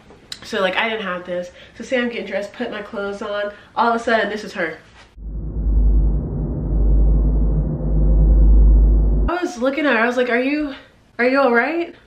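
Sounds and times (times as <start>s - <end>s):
deep muffled music drone: 5.2s - 9.3s.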